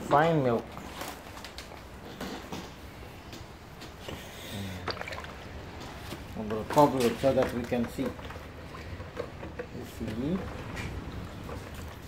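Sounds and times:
light sloshing of liquid: 0.6 - 12.0.

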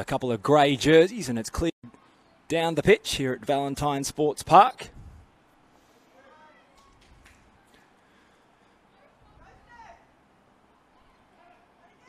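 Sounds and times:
quiet outdoor ambience: 0.0 - 12.0.

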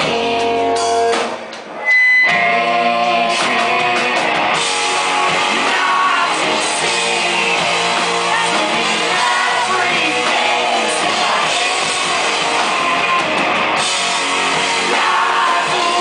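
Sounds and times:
drums: 0.0 - 16.0
electric guitar: 0.0 - 16.0
person singing: 2.3 - 4.1, 5.3 - 13.0, 14.5 - 16.0.

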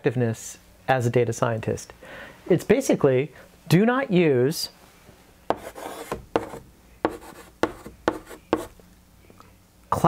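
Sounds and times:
chalk scratching on blackboard: 5.5 - 8.8.

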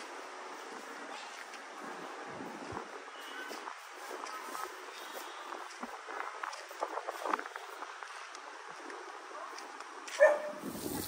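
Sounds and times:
faint outdoor background: 0.0 - 11.0
dog barking: 10.1 - 10.6.

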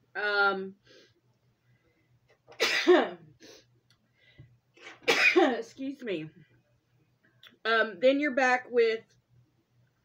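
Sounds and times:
woman sneezing: 5.0 - 5.6.

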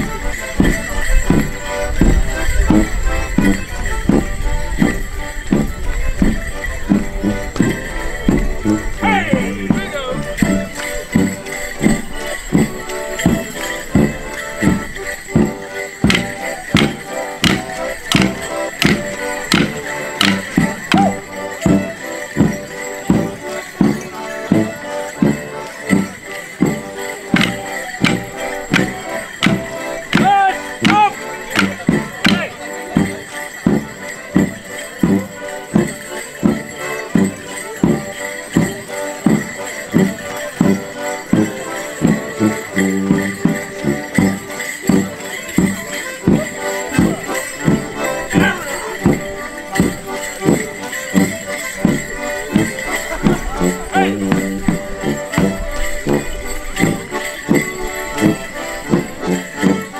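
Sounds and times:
steady drum beat: 0.0 - 35.2, 35.8 - 59.9
bells jingling: 0.0 - 59.9
folk dance tune played by band: 0.0 - 59.9
wooden sticks clacking: 16.0 - 21.1, 27.4 - 32.5.

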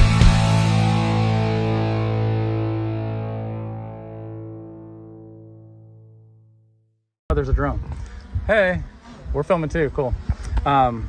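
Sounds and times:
distorted electric guitar chord ringing: 0.0 - 6.5.

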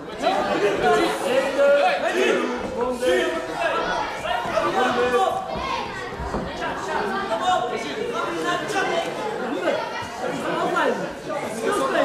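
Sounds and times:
crowd chatter echoing in hall: 0.0 - 12.0.

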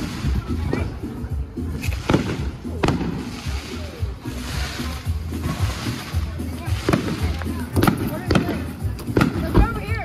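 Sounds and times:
music with thumping bass: 0.0 - 10.0
fireworks banging: 1.7 - 10.0.

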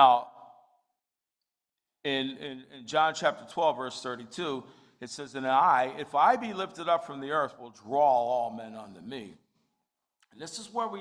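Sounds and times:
man speaking: 0.0 - 0.4, 2.1 - 9.4, 10.2 - 11.0.

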